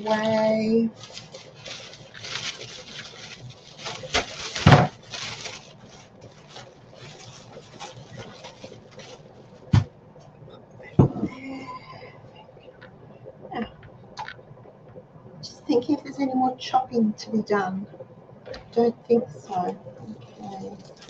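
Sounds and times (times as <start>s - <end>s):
plastic bag rustling: 0.0s - 9.9s, 19.5s - 21.0s.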